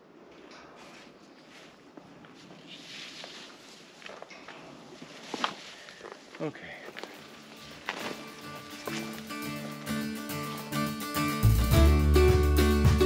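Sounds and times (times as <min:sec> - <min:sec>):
background music: 0:08.2 - 0:13.0.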